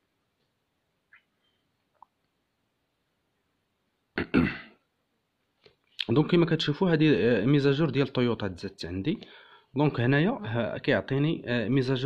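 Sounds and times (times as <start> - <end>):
man clearing his throat: 4.2 - 4.8.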